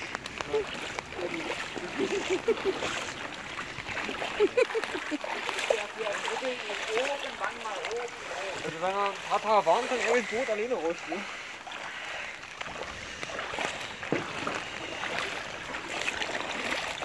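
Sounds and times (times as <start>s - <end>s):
short water splashes: 0.0s - 17.0s
water sloshing around wading feet: 0.0s - 17.0s.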